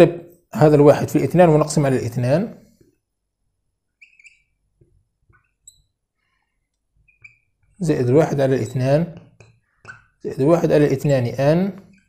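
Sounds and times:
marker squeaking on whiteboard: 0:03.8 - 0:12.0.

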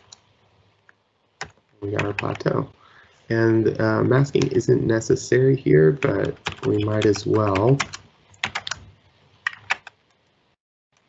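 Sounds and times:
sharp computer clicks: 0:01.4 - 0:02.5, 0:06.0 - 0:08.9, 0:09.5 - 0:10.0.

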